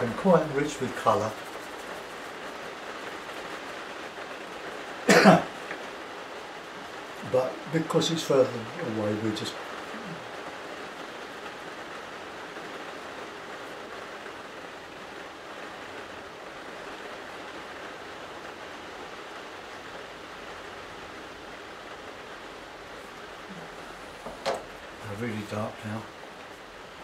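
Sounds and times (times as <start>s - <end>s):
steady rain: 0.0s - 27.0s.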